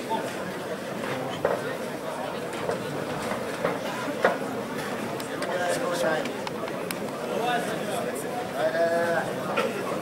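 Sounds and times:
spectators talking and shouting: 0.0 - 10.0.

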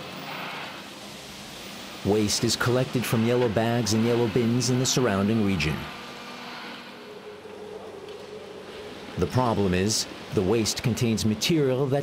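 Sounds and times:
machinery humming: 0.0 - 12.0.

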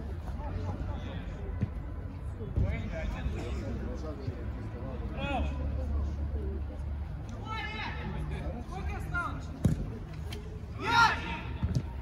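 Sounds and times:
players shouting: 10.6 - 12.0.

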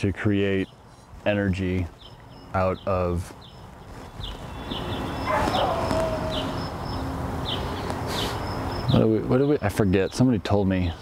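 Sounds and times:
crickets chirping: 4.4 - 9.0.

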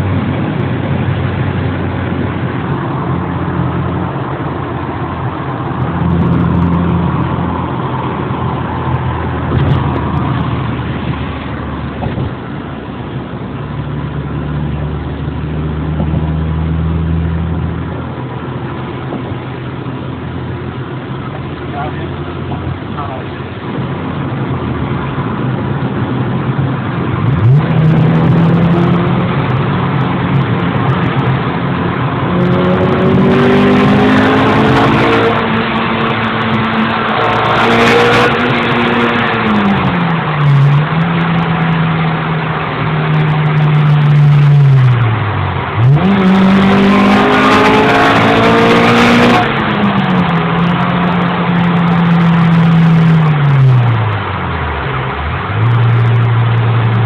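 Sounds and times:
car engine from inside cabin: 0.0 - 57.0
road noise: 0.0 - 57.0.

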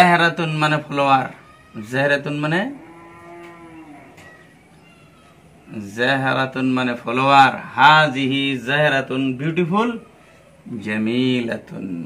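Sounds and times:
cow mooing: 2.6 - 4.4.

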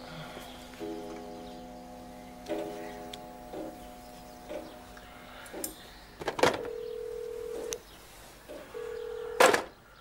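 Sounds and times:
low telephone line tone: 0.1 - 5.5, 6.5 - 7.8, 8.5 - 9.6.

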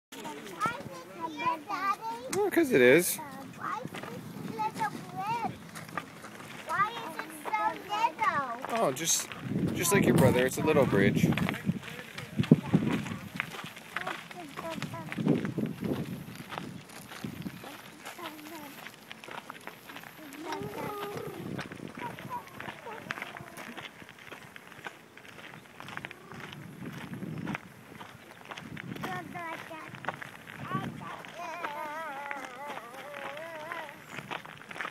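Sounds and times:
young child talking: 0.2 - 2.4, 3.2 - 5.6, 6.7 - 8.7, 12.5 - 15.5, 17.6 - 18.9, 20.2 - 23.8, 29.0 - 34.2
footsteps on gravel: 0.2 - 34.9
bike tyres crunching on gravel: 2.4 - 34.9
person's voice: 9.7 - 13.3.

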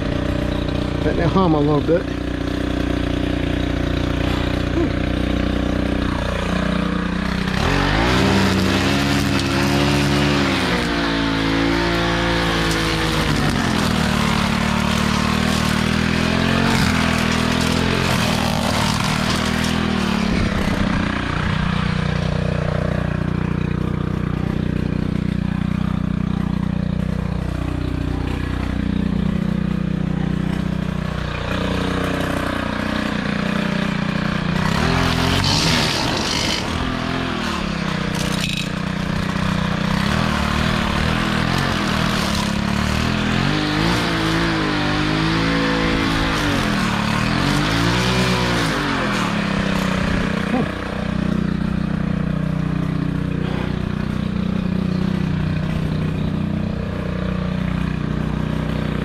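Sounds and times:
string trimmer cutting grass: 0.0 - 59.0.

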